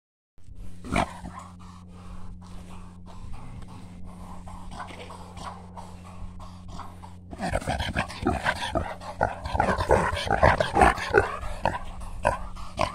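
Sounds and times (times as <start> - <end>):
wild pig grunting: 0.7 - 12.9.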